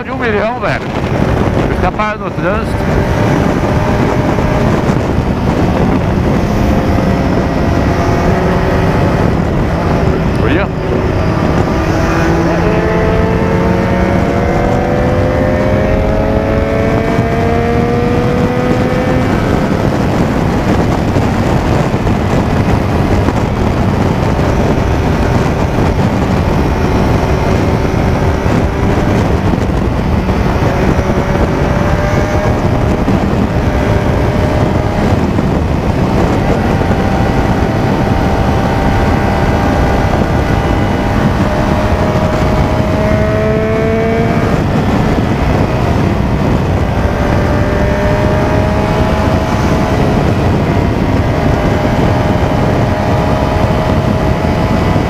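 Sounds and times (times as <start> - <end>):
motorcycle engine accelerating: 0.0 - 55.0
wind rush on microphone: 0.0 - 55.0.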